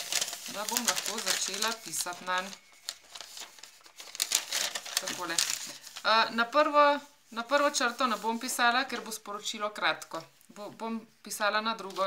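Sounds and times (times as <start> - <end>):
paper rustling and crinkling: 0.0 - 9.3, 11.8 - 12.0.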